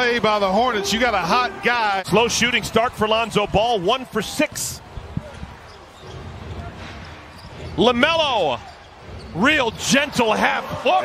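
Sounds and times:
low arena background: 0.0s - 11.0s.

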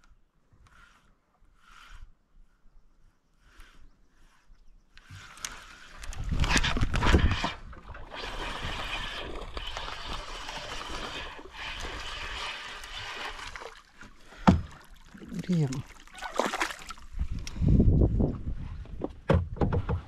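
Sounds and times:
fishing reel whirring: 8.1s - 13.6s.

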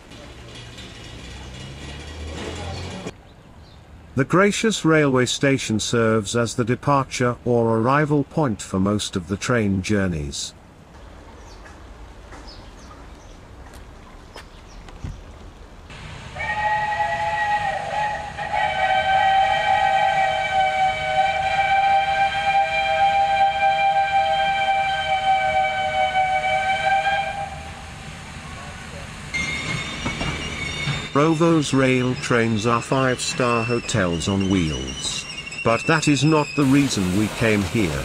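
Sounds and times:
steam locomotive whistle: 16.3s - 28.0s, 29.3s - 38.0s.

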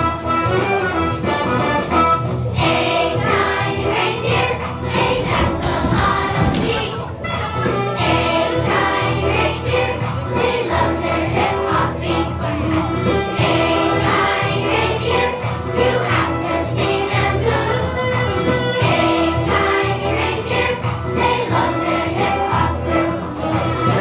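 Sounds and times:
musical accompaniment with beat: 0.0s - 24.0s
children's choir singing: 2.6s - 24.0s.

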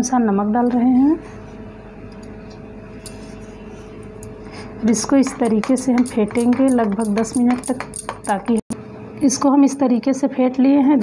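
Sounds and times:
woman speaking: 0.0s - 1.2s, 4.8s - 11.0s
steady background hum: 0.0s - 11.0s.

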